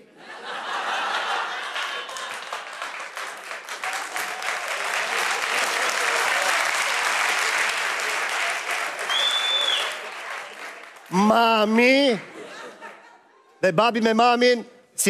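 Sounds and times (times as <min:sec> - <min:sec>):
audience applauding: 0:00.9 - 0:12.4
short high whistle: 0:09.1 - 0:10.0.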